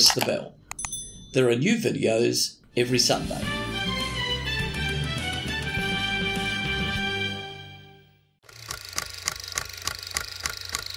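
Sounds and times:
music: 0:02.8 - 0:08.4
film projector clatter: 0:08.4 - 0:10.9.

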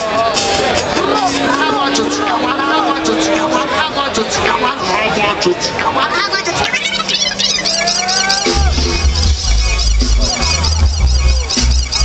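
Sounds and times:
crowd noise: 0:00.0 - 0:12.0
synth line sliding upward: 0:01.0 - 0:04.2
heavy loud bass: 0:08.5 - 0:12.0.

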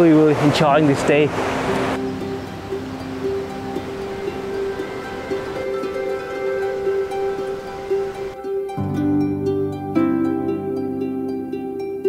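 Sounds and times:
plucked string music: 0:01.6 - 0:12.0.

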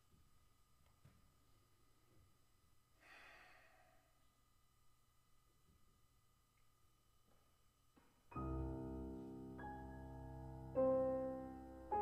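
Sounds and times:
faint breath: 0:03.0 - 0:04.2.

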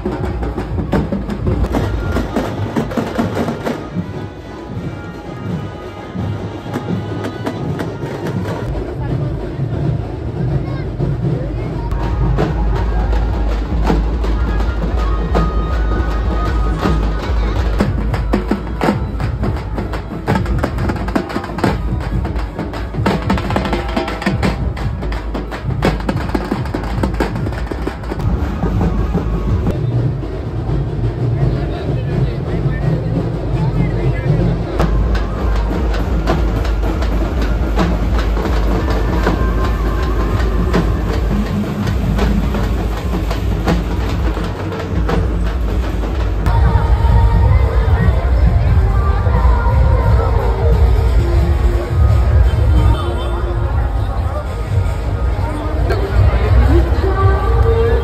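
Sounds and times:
large drums beaten with sticks: 0:00.0 - 0:05.6, 0:06.2 - 0:53.0
crowd voices: 0:00.0 - 0:58.0.

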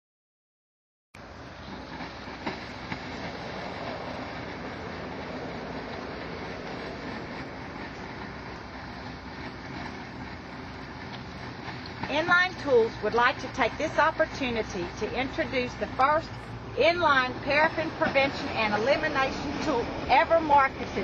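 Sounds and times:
steam and hot water venting: 0:01.2 - 0:21.0.

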